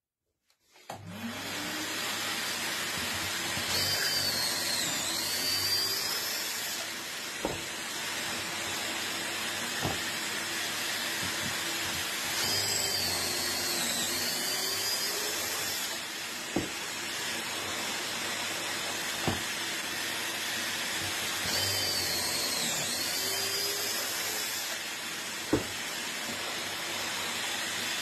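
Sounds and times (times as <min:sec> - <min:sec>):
dust extractor vacuum running: 0:00.9 - 0:28.0
cordless drill whining: 0:01.0 - 0:28.0.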